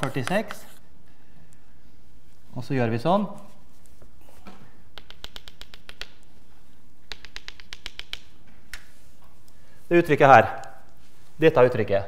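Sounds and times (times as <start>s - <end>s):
chalk tapping on blackboard: 0.0s - 0.8s, 4.9s - 6.3s, 7.1s - 8.9s.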